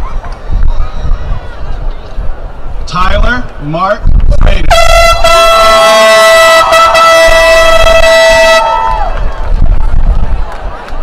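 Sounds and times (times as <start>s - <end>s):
air horn blast: 4.7s - 9.0s.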